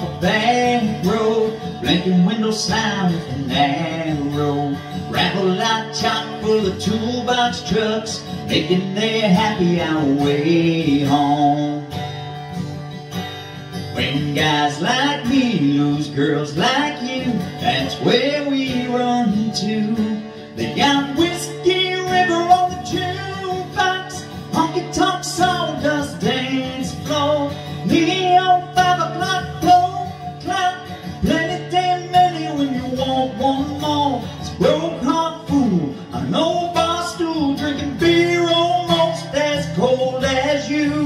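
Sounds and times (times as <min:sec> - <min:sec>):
acoustic guitar strumming: 0:00.0 - 0:41.0
man singing country song: 0:00.0 - 0:41.0.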